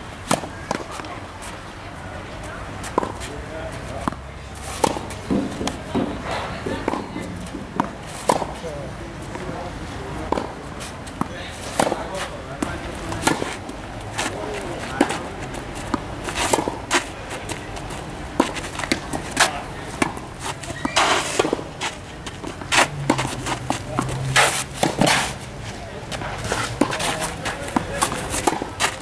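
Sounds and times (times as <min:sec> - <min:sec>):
tennis balls struck by racquets: 0:00.2 - 0:01.2, 0:02.4 - 0:29.0
tennis balls bouncing on clay: 0:00.2 - 0:01.3, 0:02.4 - 0:09.6, 0:10.2 - 0:29.0.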